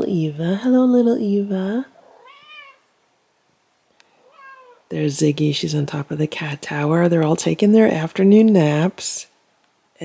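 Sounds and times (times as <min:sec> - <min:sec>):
cat meowing softly: 0:02.0 - 0:02.9, 0:04.1 - 0:04.9.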